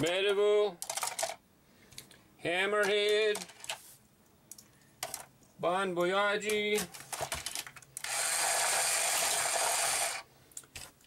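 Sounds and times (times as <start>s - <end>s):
small battery motor whirring: 8.0s - 10.3s.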